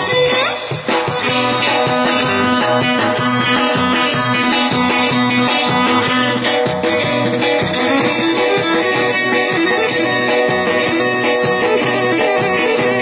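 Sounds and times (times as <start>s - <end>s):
amplified keyboard: 0.0s - 13.0s
percussion beat: 0.0s - 13.0s.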